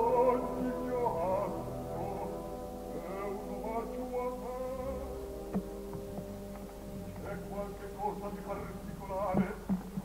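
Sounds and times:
orchestra holding soft chord: 0:00.0 - 0:09.6.

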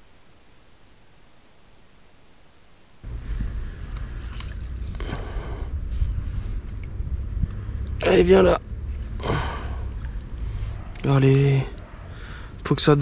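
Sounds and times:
faint hiss: 0:00.0 - 0:06.8
rustling of reeds: 0:03.0 - 0:06.6
wind rumble on microphone: 0:03.0 - 0:09.0.

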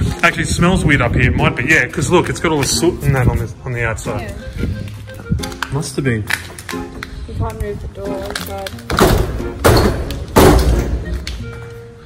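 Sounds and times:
door banging: 0:08.9 - 0:11.0.

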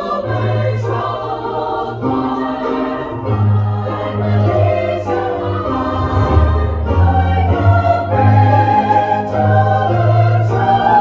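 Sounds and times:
chorus singing held chords: 0:00.0 - 0:11.0.

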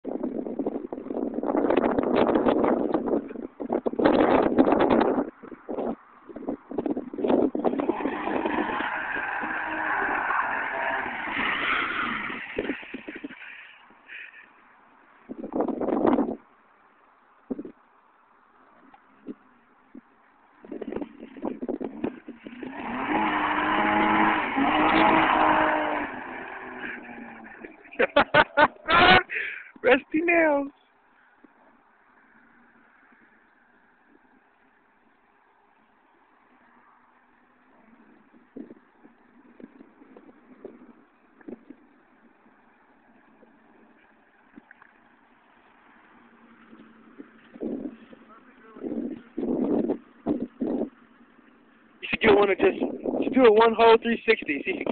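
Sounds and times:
car engine at high revs: 0:06.8 - 0:13.9, 0:20.7 - 0:29.1, 0:37.6 - 0:52.3.

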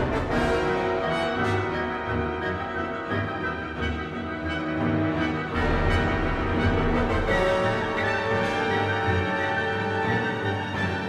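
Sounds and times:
orchestra playing brass and strings: 0:00.0 - 0:11.0.

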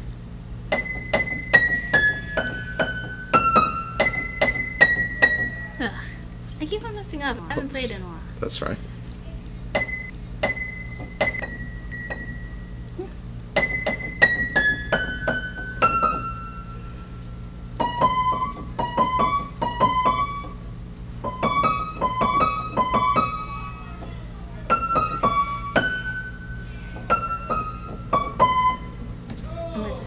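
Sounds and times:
piano melody played one-handed: 0:00.7 - 0:05.9, 0:09.7 - 0:29.3.

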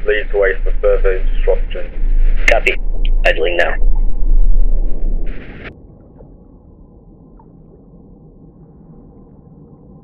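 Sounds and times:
radio static burst: 0:00.0 - 0:05.7
deep rumbling hum: 0:00.0 - 0:10.0.

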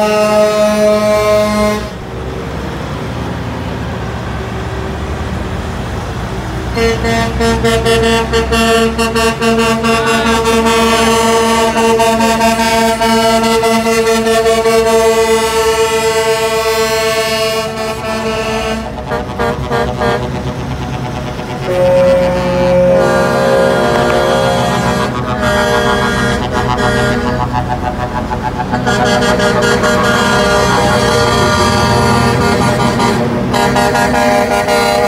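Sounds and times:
truck air horn blasts: 0:00.0 - 0:02.0, 0:06.7 - 0:20.6, 0:21.6 - 0:35.0.

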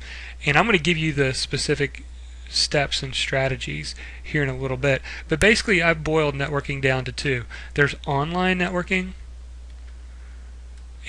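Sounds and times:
faint recording hiss: 0:00.0 - 0:11.0
low electrical hum: 0:00.0 - 0:11.0.

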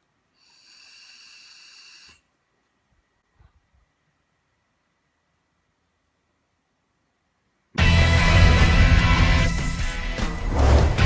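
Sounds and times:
electronic cigarette hiss: 0:00.3 - 0:02.3.

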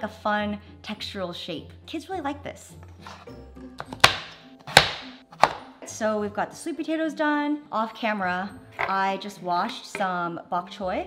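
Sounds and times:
background music: 0:00.0 - 0:11.0
blade chopping onto plastic board: 0:03.9 - 0:05.6.

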